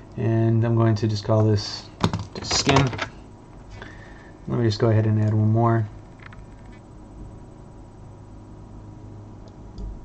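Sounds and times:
low hum: 2.4s - 10.0s.

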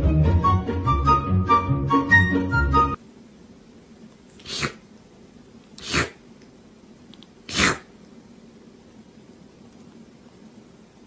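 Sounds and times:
kitten sneezing: 4.3s - 4.9s, 5.8s - 6.2s, 7.4s - 7.9s.

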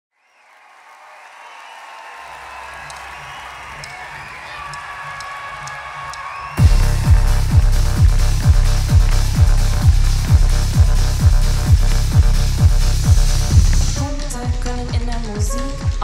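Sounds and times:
crowd noise in concert hall: 0.2s - 16.0s
low synth pulse: 6.6s - 14.2s
techno groove with kick drum: 6.6s - 16.0s.

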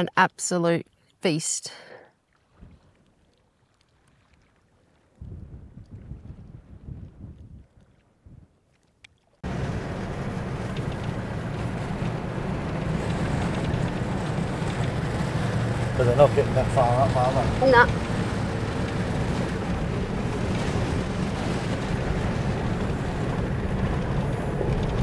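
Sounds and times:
wind buffeting microphone: 5.2s - 8.6s, 9.4s - 25.0s
vehicle engine hum: 9.4s - 25.0s.

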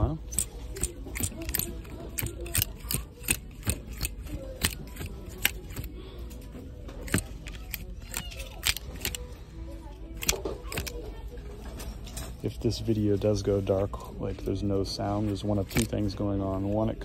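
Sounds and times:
hangers clicking on metal rail: 0.3s - 5.9s, 7.0s - 9.2s, 15.6s - 16.0s.

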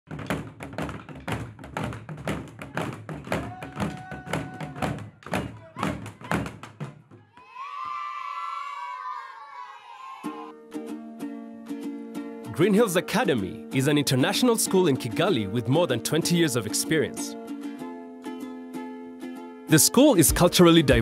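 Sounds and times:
wooden drums beaten with sticks: 0.1s - 7.4s
children's long held call: 7.3s - 10.5s.

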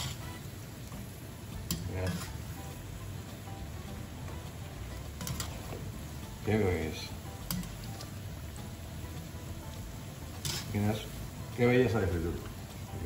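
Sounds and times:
food deep-frying sizzle: 0.0s - 13.0s
skimmer clicking against pan: 5.2s - 5.6s.

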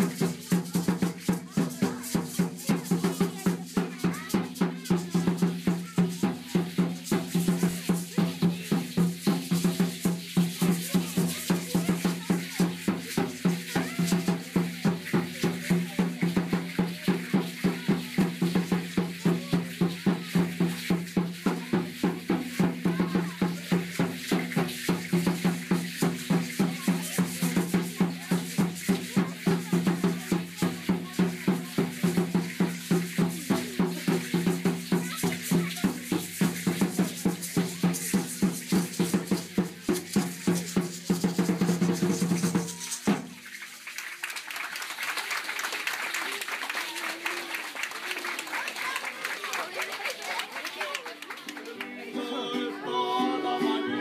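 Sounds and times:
people clapping: 0.0s - 38.1s, 39.6s - 52.4s
drum beaten fast: 0.0s - 43.4s
seed-pod rattles shaking: 0.0s - 44.2s
crowd noise: 0.0s - 54.0s.

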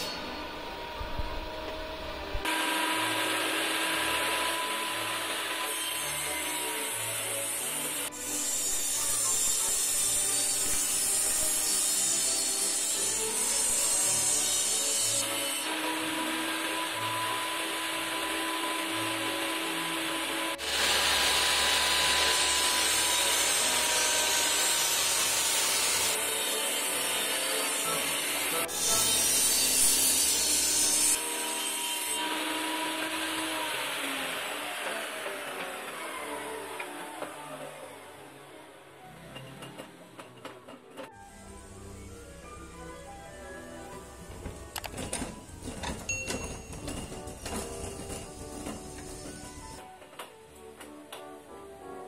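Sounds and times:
table saw cutting wood: 0.0s - 50.3s.

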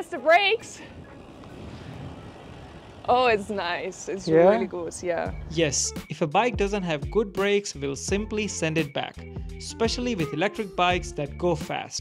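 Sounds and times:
outdoor rumble and hiss: 0.9s - 5.2s.

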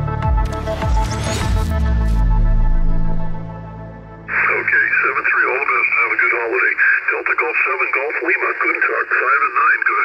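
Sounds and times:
voice over radio receiver: 4.3s - 10.0s.

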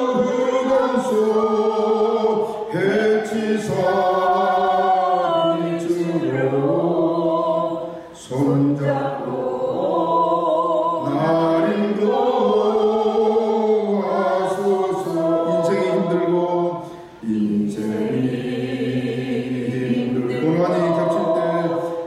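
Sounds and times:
congregation singing a hymn: 0.0s - 22.0s.

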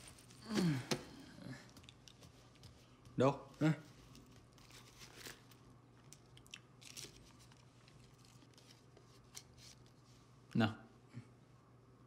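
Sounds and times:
biscuit packet crackling: 4.6s - 9.6s.

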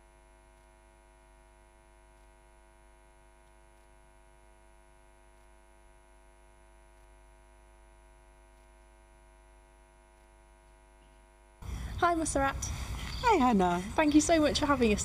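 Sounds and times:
faint electrical hum: 0.0s - 15.0s.

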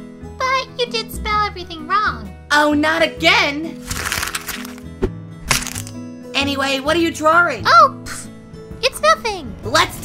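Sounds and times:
light background music: 0.0s - 10.0s
paper being crumpled: 3.8s - 4.8s, 5.5s - 6.0s.

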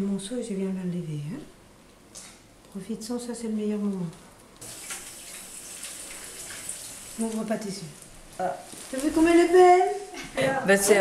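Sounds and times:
tap water running into sink: 4.6s - 7.5s.

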